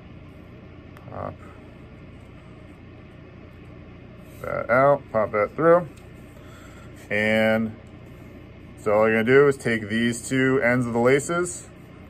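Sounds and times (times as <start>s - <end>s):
low office room hum: 0.0s - 12.0s.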